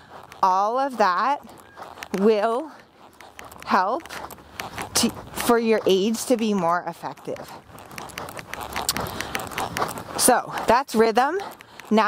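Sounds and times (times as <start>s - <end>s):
horse hoofbeats on sand: 0.0s - 12.0s.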